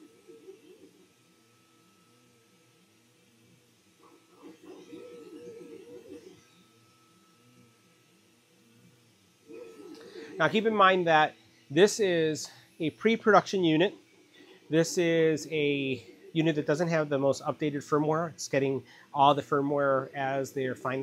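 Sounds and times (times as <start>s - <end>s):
stepper motors whining in sweeps: 0.0s - 21.0s
thin steady high tone: 0.0s - 21.0s.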